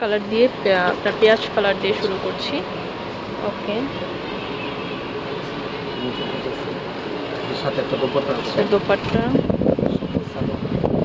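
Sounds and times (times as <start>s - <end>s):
continuous rushing noise: 0.0s - 11.0s.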